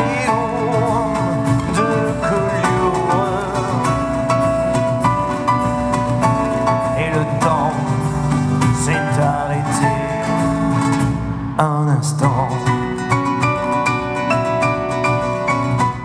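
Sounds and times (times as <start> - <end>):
live band playing chanson: 0.0 - 16.0.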